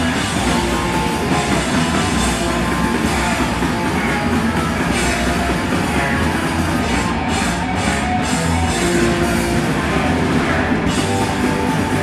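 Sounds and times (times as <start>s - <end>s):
hardcore punk band playing live: 0.0s - 12.0s.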